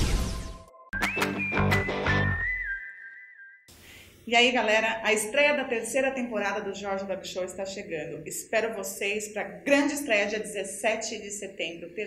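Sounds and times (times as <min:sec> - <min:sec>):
backing music with a beat: 0:00.8 - 0:02.8
whistled jingle: 0:00.8 - 0:03.7.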